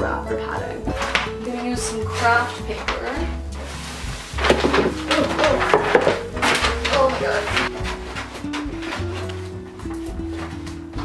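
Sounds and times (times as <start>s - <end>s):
background music: 0.0s - 11.0s
paper rustling and crinkling: 0.8s - 11.0s.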